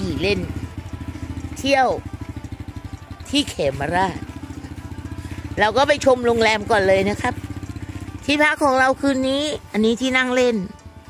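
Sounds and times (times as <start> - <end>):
small motorcycle engine running: 0.0 - 11.0.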